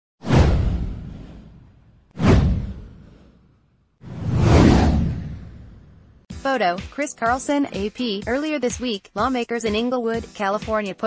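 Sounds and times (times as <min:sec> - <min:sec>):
swoosh sound effect: 0:00.2 - 0:03.4, 0:04.0 - 0:06.2
deep rumble: 0:04.0 - 0:06.3.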